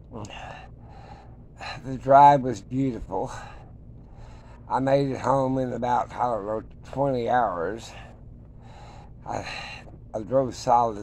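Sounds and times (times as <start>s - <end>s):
man gasping breath: 0.2s - 1.9s, 7.9s - 10.0s
man speaking: 1.7s - 3.5s, 4.7s - 8.0s, 10.2s - 11.0s.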